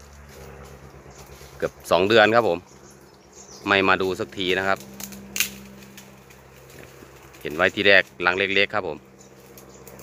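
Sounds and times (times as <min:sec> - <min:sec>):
honeybee colony humming: 0:00.0 - 0:10.0.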